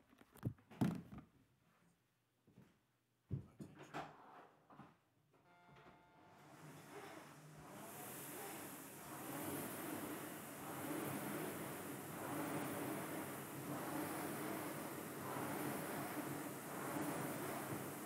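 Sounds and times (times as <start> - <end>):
faint knocks and clunks: 2.5 - 5.0
rowing machine fan whooshing: 6.5 - 18.0.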